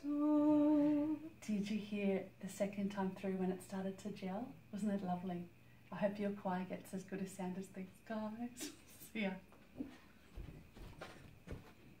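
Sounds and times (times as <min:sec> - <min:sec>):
faint footsteps on floor: 0:09.5 - 0:12.0.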